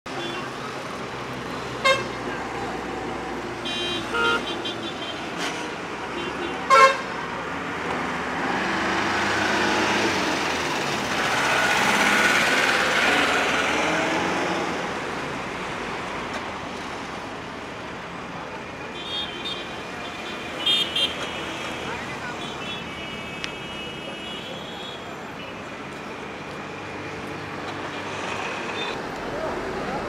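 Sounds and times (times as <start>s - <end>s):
vehicles passing: 0.1s - 30.0s
vehicle horns honking: 1.8s - 2.2s, 3.6s - 5.4s, 6.2s - 7.1s, 18.9s - 25.6s.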